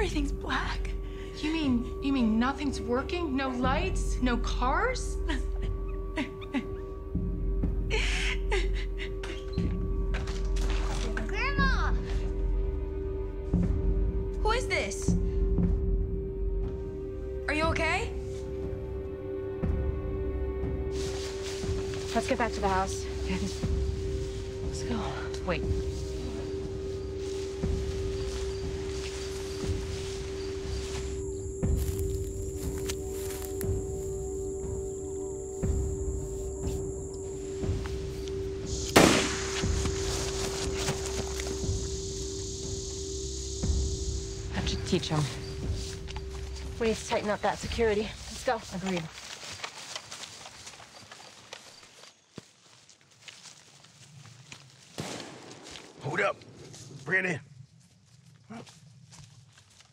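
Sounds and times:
tense film score drone: 0:00.0 - 0:49.5
high held tones: 0:20.9 - 0:48.6
footsteps running through long grass: 0:25.9 - 0:34.1, 0:38.7 - 0:41.9, 0:45.2 - 0:59.9
sharp loud crack: 0:38.9 - 0:39.8.

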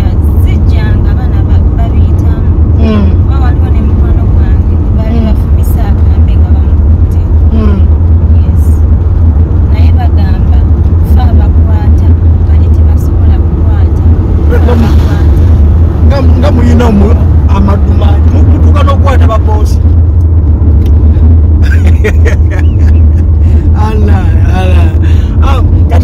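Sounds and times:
woman talking: 0:00.0 - 0:08.8, 0:09.7 - 0:14.0, 0:14.6 - 0:15.4, 0:25.2 - 0:26.0
car rumble from inside cabin: 0:00.0 - 0:26.0.

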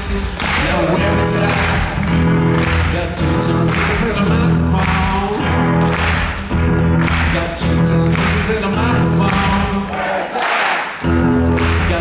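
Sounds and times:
person singing: 0:00.0 - 0:06.4, 0:07.0 - 0:10.6, 0:11.4 - 0:12.0
acoustic guitar strumming: 0:00.0 - 0:09.9, 0:11.0 - 0:12.0.

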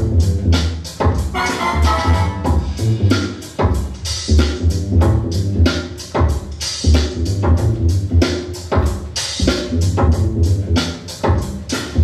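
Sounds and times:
deep bass line: 0:00.0 - 0:03.3, 0:04.3 - 0:05.8, 0:06.8 - 0:08.3, 0:09.4 - 0:10.8
hip-hop beat over sound system: 0:00.0 - 0:12.0.

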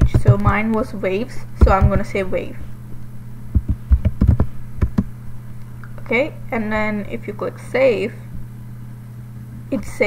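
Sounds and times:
laptop keyboard typing: 0:03.6 - 0:05.1.

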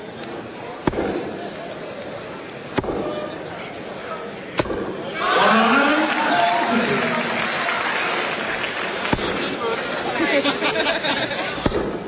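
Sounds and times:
crowd noise and voices: 0:00.0 - 0:12.0
darts thudding into dartboard: 0:00.8 - 0:01.3, 0:02.8 - 0:03.3.

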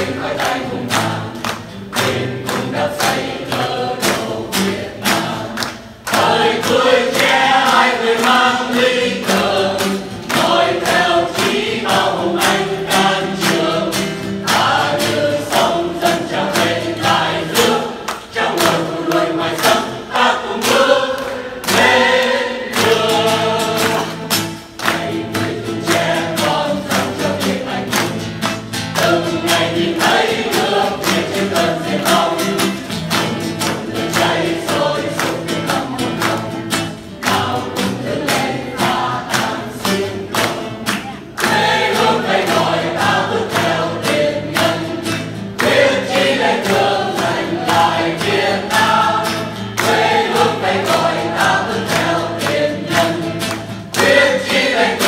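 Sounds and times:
mixed choir singing: 0:00.0 - 0:55.0
strummed acoustic guitar: 0:00.0 - 0:55.0.

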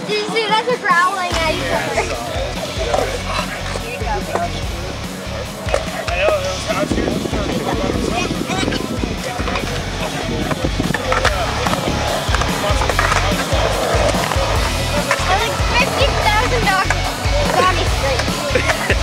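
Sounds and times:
music playing: 0:00.0 - 0:19.0
skateboard wheels rolling on concrete: 0:00.0 - 0:19.0.

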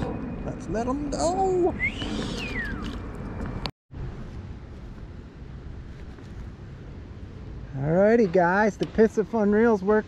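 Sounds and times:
low rumbling wind noise: 0:00.0 - 0:10.0
falling whistle-like call: 0:01.7 - 0:02.9.

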